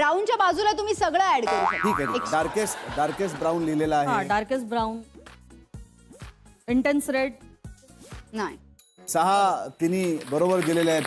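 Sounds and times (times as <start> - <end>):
comic boing sound effect: 1.5 - 2.5.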